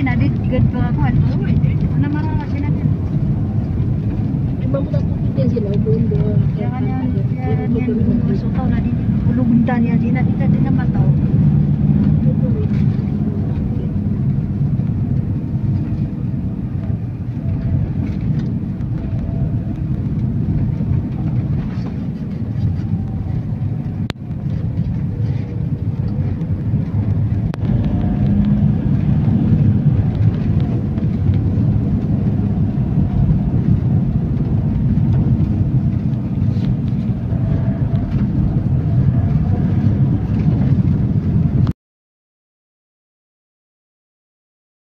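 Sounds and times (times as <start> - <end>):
vehicle engine and road rumble: 0.0 - 41.8.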